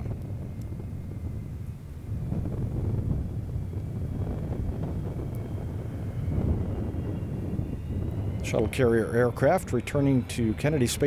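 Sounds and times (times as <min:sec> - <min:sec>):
faint high turbine whine: 0:00.0 - 0:11.0
jet engines rumbling: 0:00.0 - 0:11.0
wind buffeting microphone: 0:00.0 - 0:11.0.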